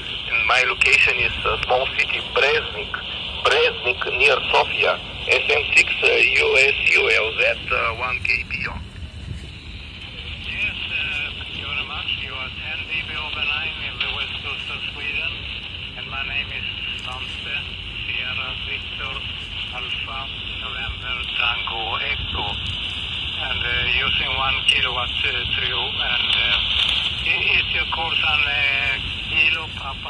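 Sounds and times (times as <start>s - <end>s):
radio voice through speaker: 0.0s - 8.8s, 10.1s - 22.7s, 23.4s - 30.0s
radio hiss: 0.0s - 30.0s.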